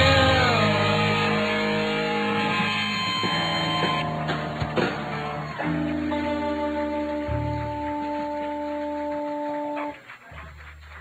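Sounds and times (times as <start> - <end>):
low bass: 0.0 - 9.5
sustained electric guitar note: 0.0 - 9.7.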